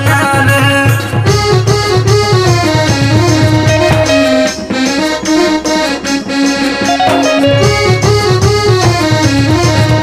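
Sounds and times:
instrumental melody over chords: 0.0 - 10.0.

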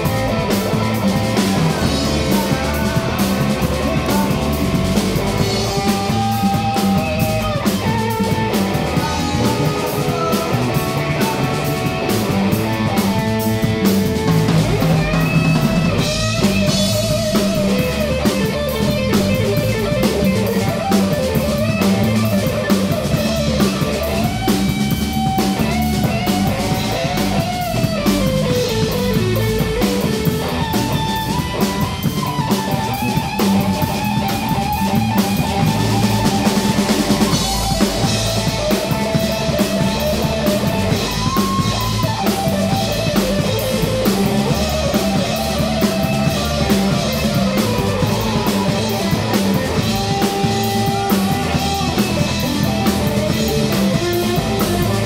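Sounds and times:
lead electric guitar with bent notes: 0.0 - 55.0
rock band playing: 0.0 - 55.0.

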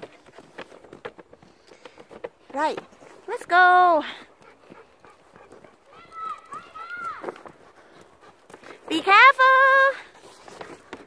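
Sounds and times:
footsteps on gravel: 0.0 - 11.0.

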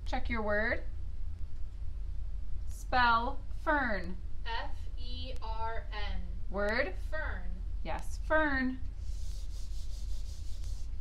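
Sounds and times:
eraser rubbing on whiteboard: 9.0 - 11.0.

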